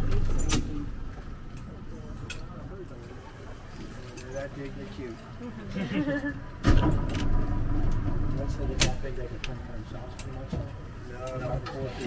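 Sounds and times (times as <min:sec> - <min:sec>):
low rumble: 0:06.4 - 0:10.2.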